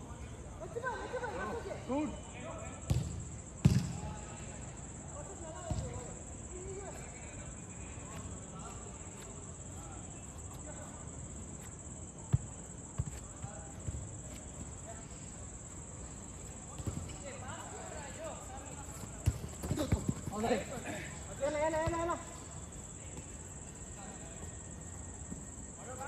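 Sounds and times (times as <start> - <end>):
football kicked on turf: 2.9 - 4.0, 12.3 - 14.5, 16.7 - 17.2.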